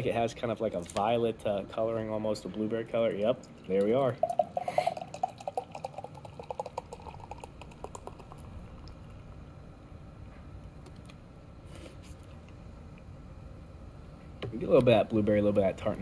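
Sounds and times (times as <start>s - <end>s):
carbonation hiss: 3.3s - 9.6s
beer glugging into a glass: 3.4s - 9.2s.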